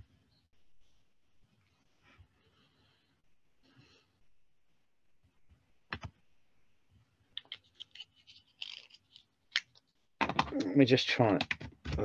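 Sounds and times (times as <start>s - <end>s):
keys clicking and tapping: 10.2s - 10.7s
man speaking: 10.5s - 11.4s.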